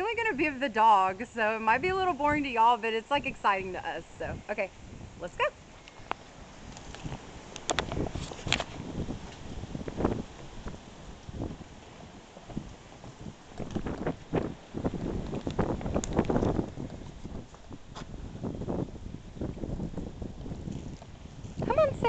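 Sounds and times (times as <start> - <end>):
wind rumbling on microphone: 0.0 - 22.0
footsteps on concrete: 5.7 - 18.9
footsteps on wooden steps: 5.9 - 18.9.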